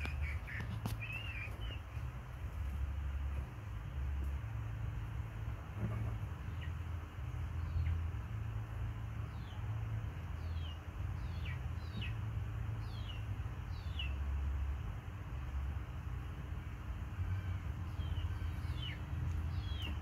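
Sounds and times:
birds chirping: 0:00.0 - 0:02.4, 0:05.9 - 0:08.4, 0:09.2 - 0:14.4, 0:17.1 - 0:20.0
steady low rumble: 0:00.0 - 0:20.0.

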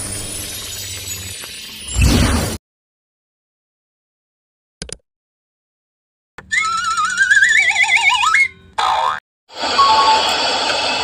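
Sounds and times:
wobbling rising whistle tone: 0:06.5 - 0:08.6.

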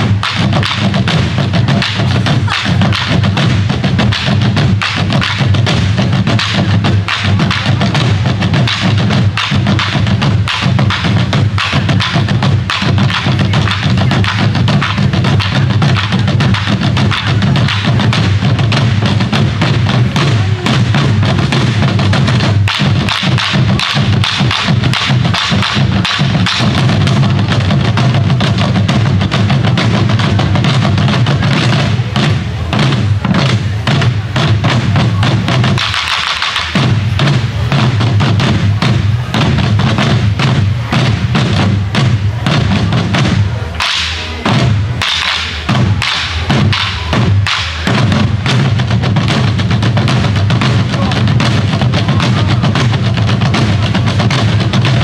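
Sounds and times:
barrel drums struck with sticks: 0:00.0 - 0:55.0.

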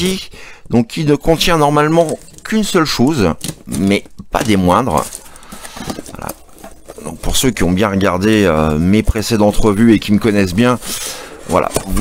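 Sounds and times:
packing tape scraping and rustling: 0:01.3 - 0:12.0.

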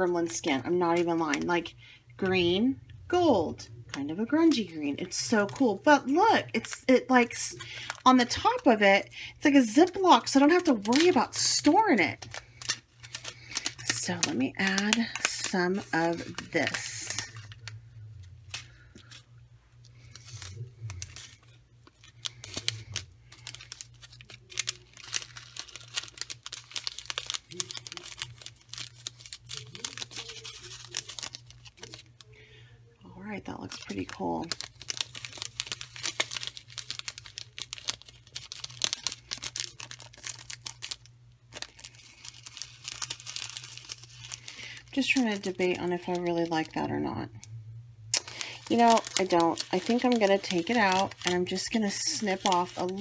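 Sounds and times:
plastic packaging crinkling: 0:03.9 - 0:47.5, 0:48.1 - 0:53.0
sequins clicking in plastic sleeve: 0:10.2 - 0:17.8, 0:19.8 - 0:32.4, 0:33.7 - 0:46.7, 0:48.1 - 0:53.0.

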